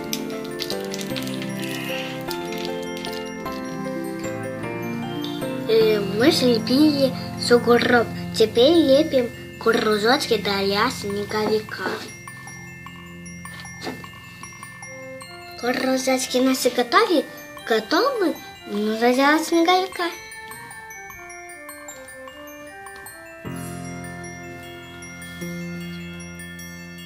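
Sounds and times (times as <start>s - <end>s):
chime-like bell tones music: 0.0s - 27.0s.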